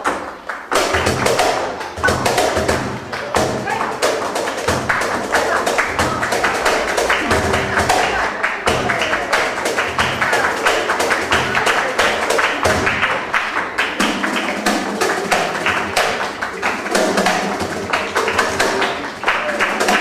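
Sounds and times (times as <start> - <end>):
flamenco band playing: 0.0 - 20.0
rhythmic hand clapping: 0.0 - 20.0.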